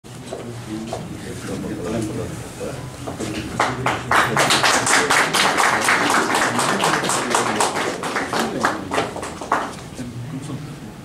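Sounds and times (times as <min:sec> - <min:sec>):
small group clapping: 0:03.1 - 0:10.0.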